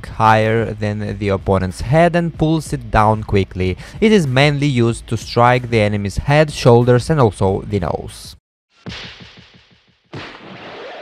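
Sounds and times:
heavy impact sound effects: 0:08.8 - 0:11.0.

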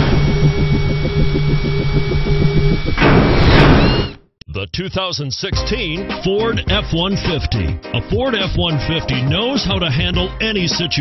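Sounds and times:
engine rumble throbbing: 0:00.0 - 0:03.2.

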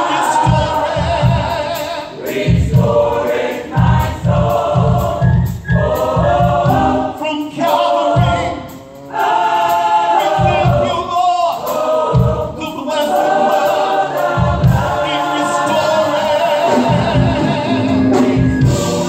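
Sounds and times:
gospel choir singing: 0:00.0 - 0:19.0.

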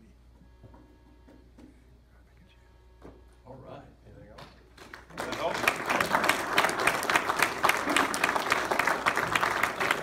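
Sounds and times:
steady low hum: 0:00.0 - 0:05.0.

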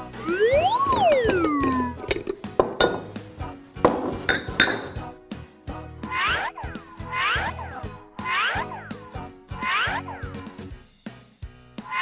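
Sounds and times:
whistle-like cartoon sound effect: 0:00.0 - 0:02.1, 0:06.0 - 0:10.5, 0:11.8 - 0:12.0
ceramic bowls and spoon clinking: 0:04.0 - 0:05.0.

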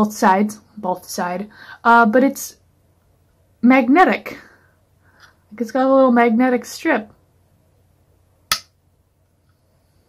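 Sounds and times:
plastic figure snapping onto magnet: 0:08.5 - 0:08.7.

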